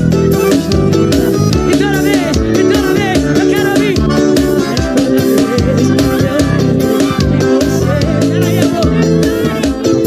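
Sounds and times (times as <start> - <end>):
live band music: 0.0 - 10.0
steady drum beat: 0.0 - 10.0.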